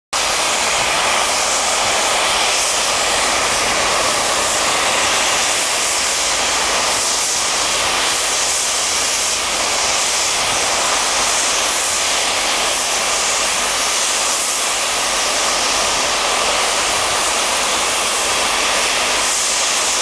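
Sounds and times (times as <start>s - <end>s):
steam locomotive safety valves hissing: 0.2s - 20.0s.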